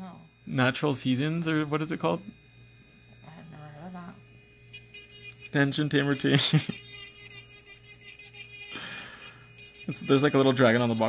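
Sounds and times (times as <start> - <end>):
nail file rasping on fingernails: 4.7 - 11.0.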